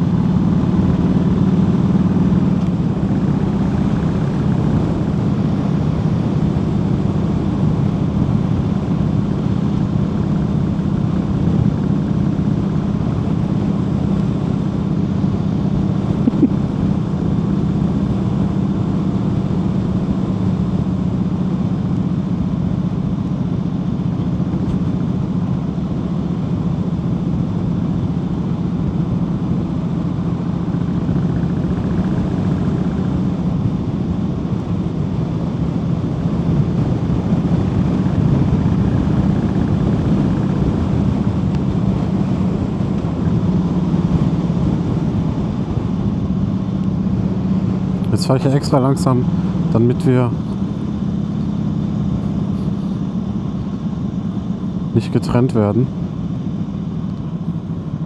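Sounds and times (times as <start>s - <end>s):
motorcycle engine cruising: 0.0s - 58.0s
rush of riding wind: 0.0s - 58.0s.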